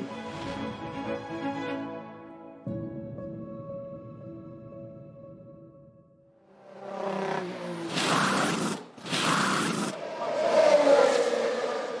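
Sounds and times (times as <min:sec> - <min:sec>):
racing car engine roaring: 0:10.0 - 0:12.0.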